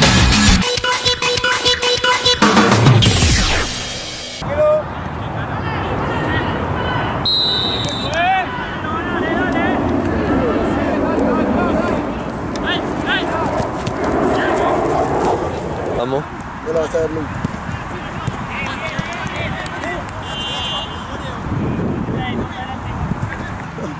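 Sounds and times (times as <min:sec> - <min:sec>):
players shouting: 0:04.4 - 0:12.0
outdoor background murmur: 0:04.4 - 0:23.9
referee's whistle blast: 0:07.2 - 0:08.2.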